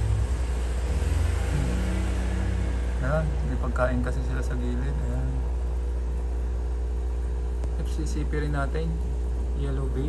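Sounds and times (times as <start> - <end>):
faint hum: 0.0 - 10.0
second hum tone: 0.0 - 10.0.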